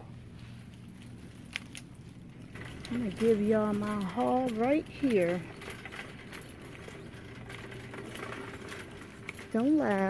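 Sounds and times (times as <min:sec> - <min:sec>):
cart rattling and clicking: 0:02.2 - 0:10.0
shopping cart wheels humming: 0:02.2 - 0:10.0.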